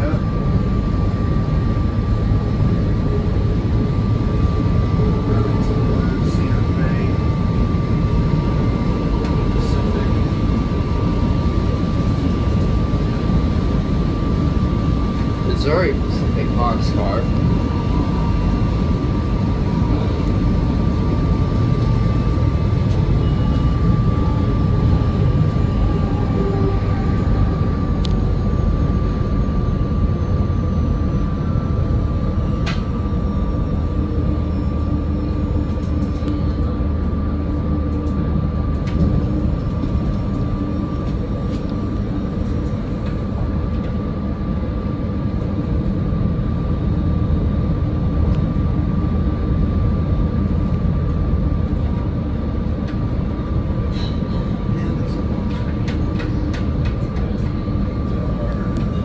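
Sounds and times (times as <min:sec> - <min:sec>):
thin steady whine: 0:00.0 - 0:59.0
train wheels rumbling on rail: 0:00.0 - 0:59.0.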